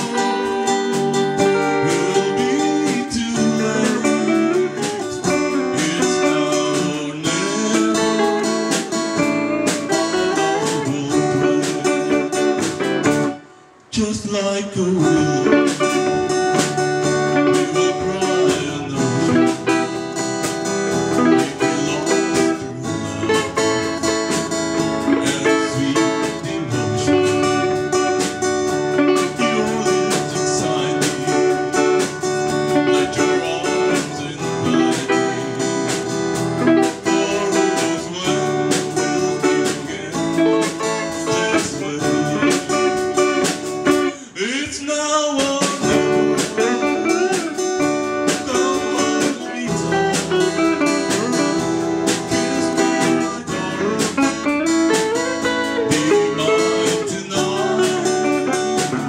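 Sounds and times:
drum kit beat: 0.0 - 13.5, 15.0 - 59.0
acoustic guitar strumming: 0.0 - 59.0.

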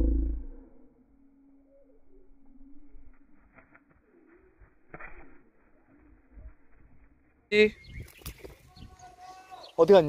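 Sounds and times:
faint wavering bird calls: 0.0 - 10.0.

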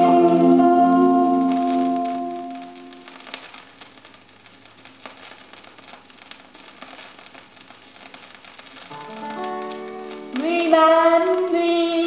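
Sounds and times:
vinyl crackles and pops: 0.0 - 12.0
vinyl surface hiss: 0.0 - 12.0.

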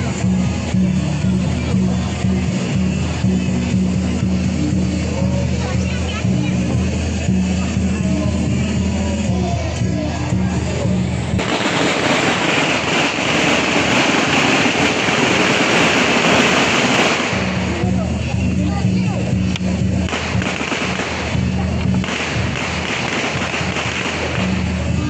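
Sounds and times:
festival music: 0.0 - 25.0
firecrackers crackling: 0.0 - 25.0.

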